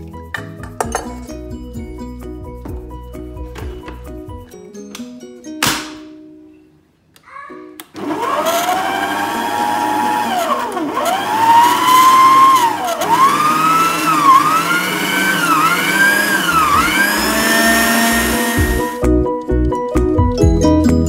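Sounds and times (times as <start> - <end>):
electric stand mixer whirring: 8.0 - 19.0.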